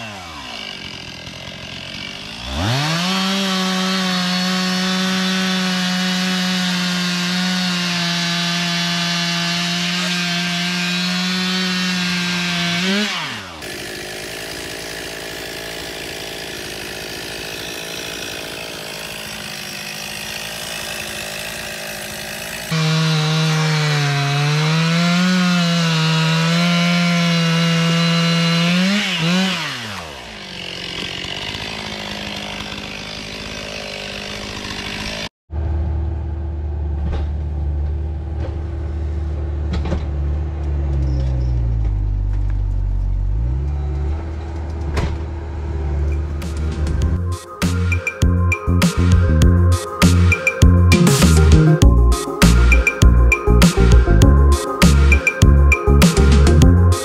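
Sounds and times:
chainsaw revving and cutting: 0.0s - 35.3s, 45.7s - 57.0s
deep steady hum: 35.5s - 39.4s.

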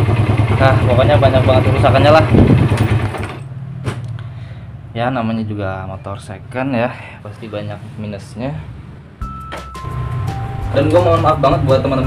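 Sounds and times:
motorcycle engine rattling: 0.0s - 3.6s.

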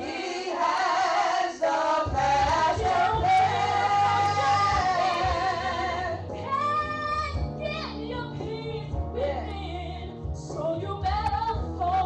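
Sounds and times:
low musical backing: 0.0s - 12.0s
woman singing into a microphone: 2.8s - 12.0s.

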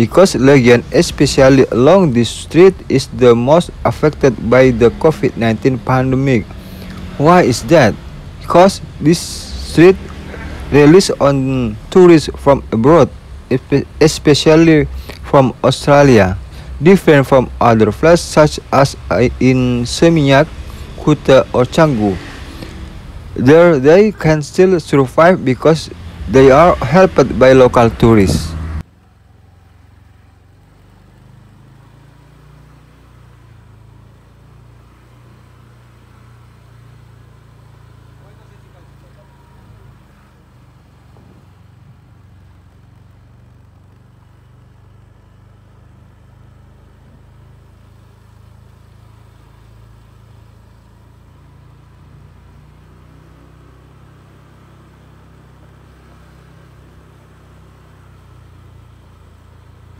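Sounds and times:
distant road traffic rumble: 0.0s - 59.9s.

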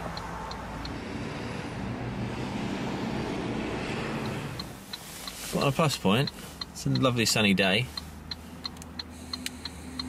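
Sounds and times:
hazard flasher relay ticking: 0.0s - 1.0s, 4.2s - 10.0s
road traffic rumble: 0.0s - 10.0s.

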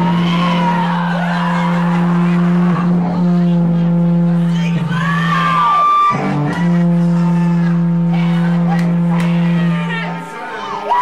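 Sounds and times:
crowd shouting: 0.0s - 11.0s
loud amplified low drone: 0.0s - 11.0s.

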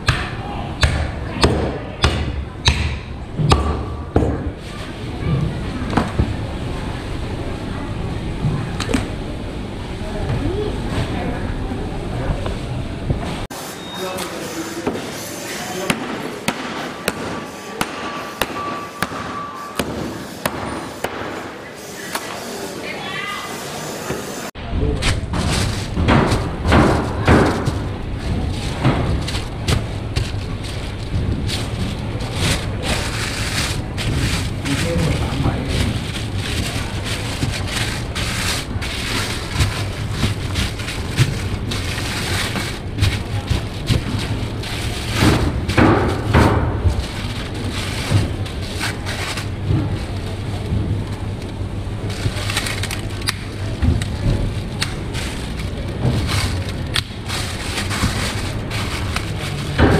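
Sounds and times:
steady low hum: 24.4s - 59.9s
plastic sheeting crinkling: 25.3s - 51.3s, 51.9s - 59.9s.

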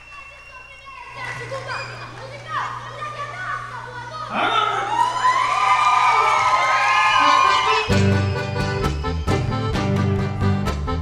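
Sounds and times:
group shouting and cheering: 0.0s - 9.6s
folk dance music: 6.9s - 11.0s.

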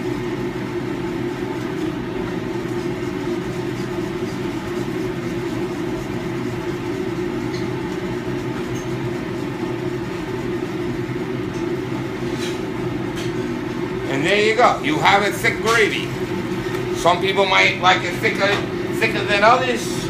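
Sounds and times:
ventilation fan hum: 0.0s - 20.0s.

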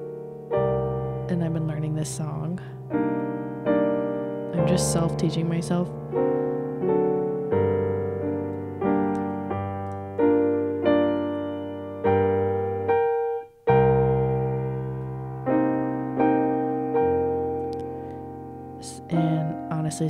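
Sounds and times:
piano chords played slowly: 0.0s - 20.0s.

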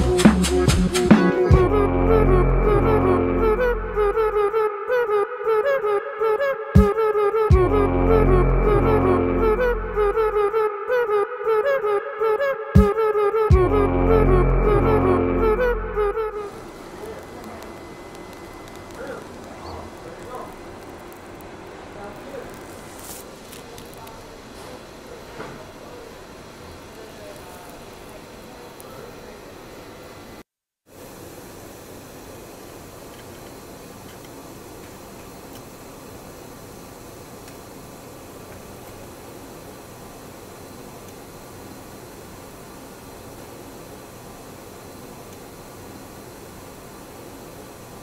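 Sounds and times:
machinery and ventilation hiss: 14.8s - 48.0s.

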